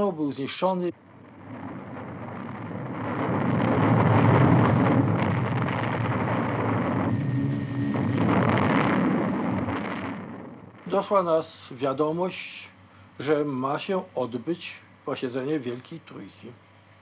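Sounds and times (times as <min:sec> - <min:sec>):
loud continuous rumbling: 0:00.0 - 0:17.0.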